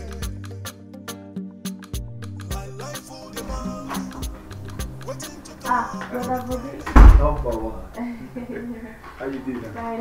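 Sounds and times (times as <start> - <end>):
person speaking: 5.2 - 10.0
door banging shut: 6.8 - 7.9.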